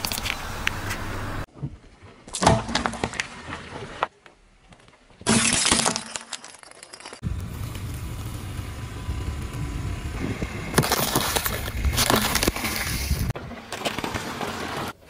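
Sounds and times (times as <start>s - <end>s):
light bulbs shattering under tyre: 5.2s - 7.2s
tyre crushing brittle items: 5.3s - 7.2s, 10.7s - 14.9s.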